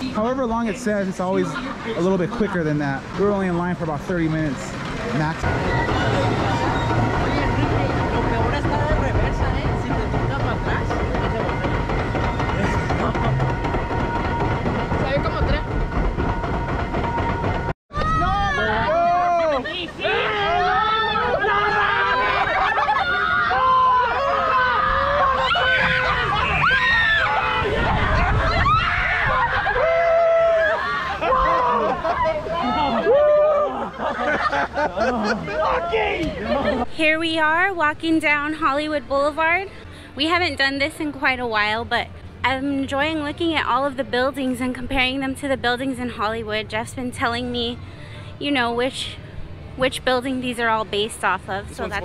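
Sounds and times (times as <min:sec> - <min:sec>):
conveyor lift rumble and rattle: 0:00.0 - 0:52.0
people laughing: 0:12.6 - 0:13.5, 0:18.6 - 0:20.5, 0:21.5 - 0:23.5, 0:28.0 - 0:36.9
people shouting and whooping: 0:17.9 - 0:36.8.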